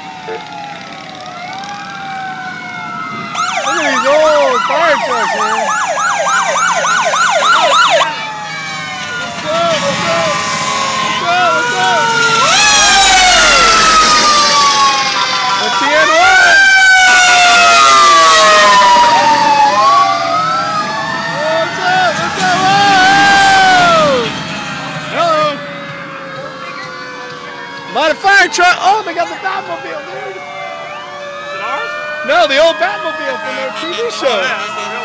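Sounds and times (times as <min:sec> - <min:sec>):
long siren tones sinking in pitch: 0:00.0 - 0:35.0
siren fast yelp: 0:00.0 - 0:35.0
sirens wailing: 0:00.0 - 0:35.0.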